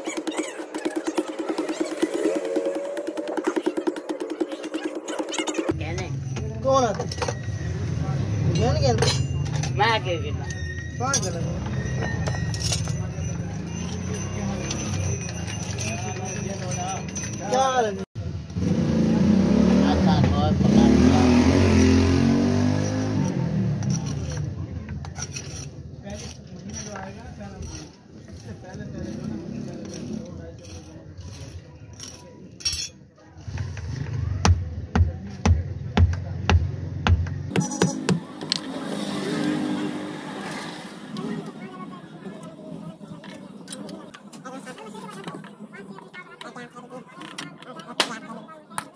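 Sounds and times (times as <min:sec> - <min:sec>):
vehicle engine passing by: 0:18.4 - 0:24.8, 0:28.6 - 0:30.6, 0:36.3 - 0:41.8.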